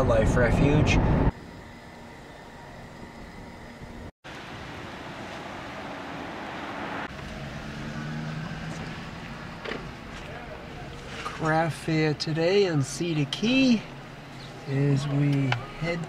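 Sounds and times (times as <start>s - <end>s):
car cabin road noise: 3.8s - 16.0s.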